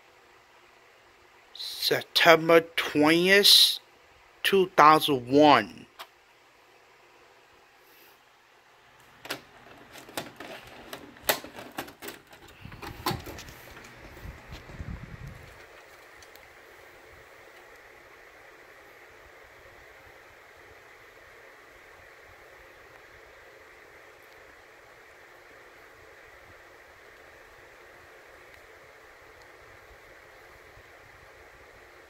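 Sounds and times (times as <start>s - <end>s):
faint steady hiss: 0.0s - 32.0s
cassette clicks and clunks: 9.1s - 14.7s.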